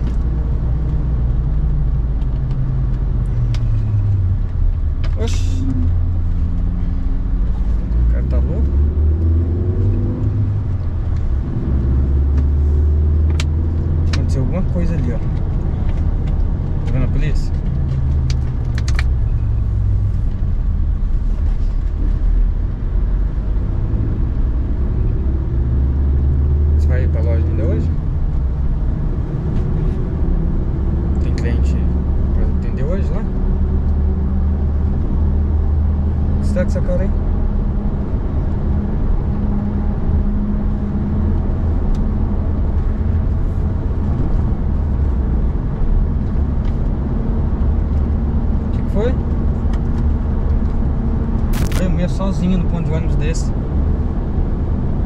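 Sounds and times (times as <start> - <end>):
car road and engine drone: 0.0 - 55.0.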